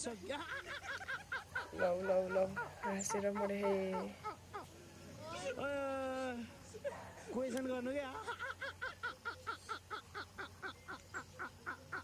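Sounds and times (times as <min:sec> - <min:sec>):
man laughing high-pitched: 0:08.0 - 0:10.6.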